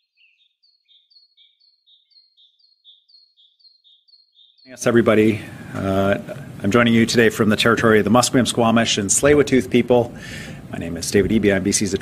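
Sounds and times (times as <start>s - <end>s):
faint bird chirping: 0.0s - 5.7s.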